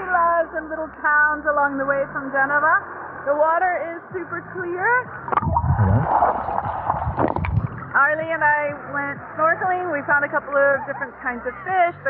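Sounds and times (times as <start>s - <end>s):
muffled underwater sloshing: 5.1s - 8.4s.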